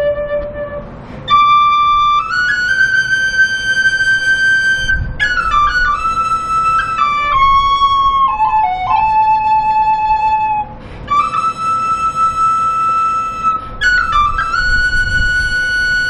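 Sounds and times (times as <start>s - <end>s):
tin whistle slow air: 0.0s - 16.0s.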